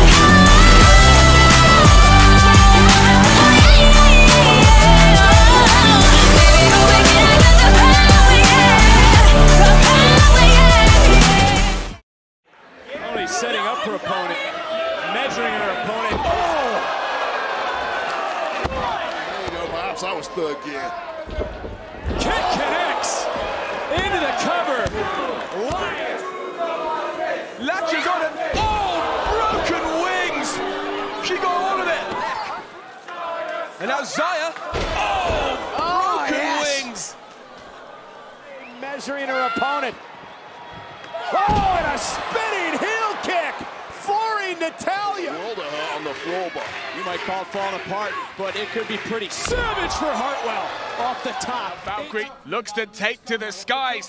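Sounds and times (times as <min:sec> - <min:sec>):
crowd noise: 0:00.0 - 0:11.9, 0:12.5 - 0:54.0
voices shouting: 0:13.0 - 0:40.0
people shouting: 0:20.9 - 0:38.6, 0:41.2 - 0:51.7.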